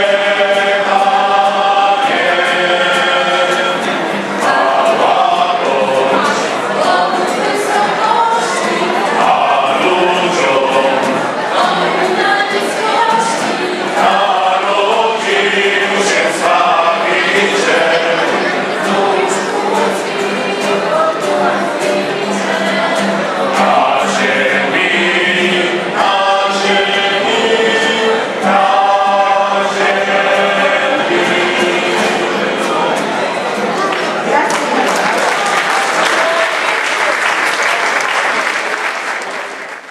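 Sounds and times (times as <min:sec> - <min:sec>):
mixed choir singing: 0:00.0 - 0:37.6.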